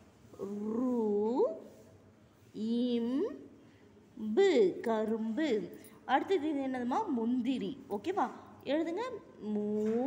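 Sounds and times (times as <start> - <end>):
woman drawing out a syllable: 0.3 - 1.8, 2.5 - 3.5.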